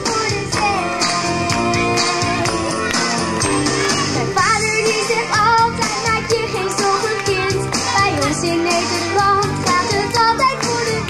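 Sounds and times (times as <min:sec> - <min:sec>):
girl singing into a microphone: 0:00.0 - 0:02.9, 0:04.4 - 0:11.0
pop backing track with beat: 0:00.0 - 0:11.0.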